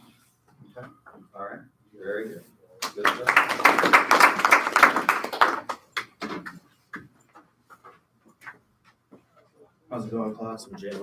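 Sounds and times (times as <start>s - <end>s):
small group applause: 2.8s - 6.6s.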